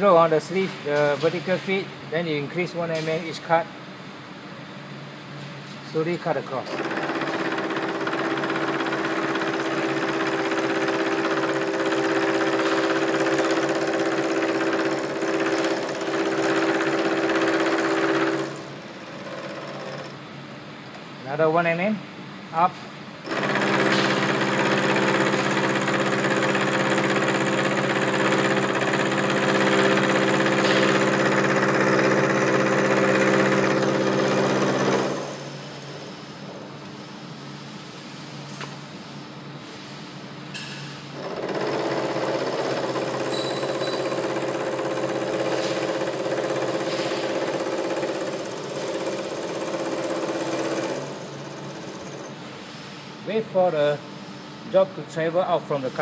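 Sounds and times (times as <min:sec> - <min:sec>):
machine hum: 0:06.4 - 0:21.2, 0:23.2 - 0:37.0
milling machine cutting metal: 0:23.3 - 0:35.6.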